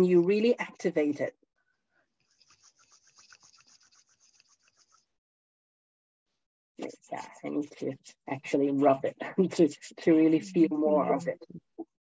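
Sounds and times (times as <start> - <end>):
hands rubbing together: 2.2 - 5.1.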